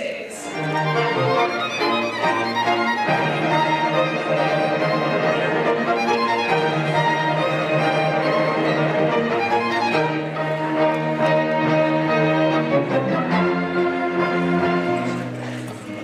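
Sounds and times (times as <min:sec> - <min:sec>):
low held cello notes: 0:00.4 - 0:16.0
string ensemble playing: 0:00.4 - 0:16.0.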